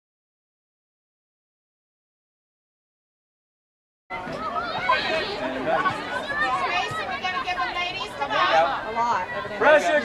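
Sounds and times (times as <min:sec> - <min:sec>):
spectators chattering: 0:04.1 - 0:10.0.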